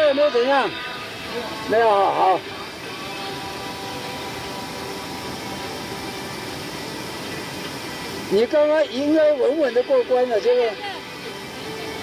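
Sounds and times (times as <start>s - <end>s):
stream rushing over boulders: 0.0s - 12.0s.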